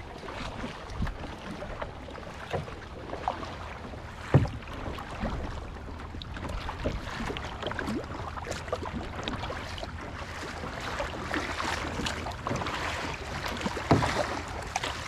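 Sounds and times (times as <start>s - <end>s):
paddle splashing and dripping: 0.0s - 15.0s
water lapping at hull: 0.0s - 15.0s.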